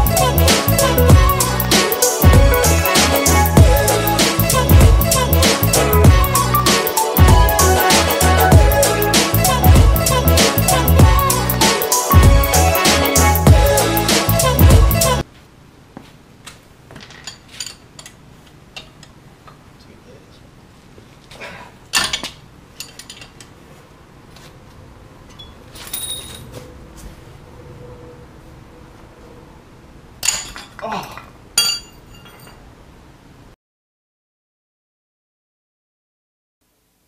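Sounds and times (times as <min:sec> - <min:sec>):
tools clinking on metal: 0:17.0 - 0:18.2, 0:21.9 - 0:23.5, 0:25.3 - 0:26.5, 0:30.2 - 0:32.6.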